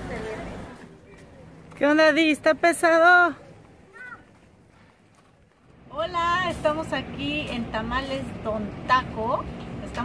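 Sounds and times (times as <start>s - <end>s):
faint background noise: 0.0s - 10.0s
woman speaking: 5.9s - 10.0s.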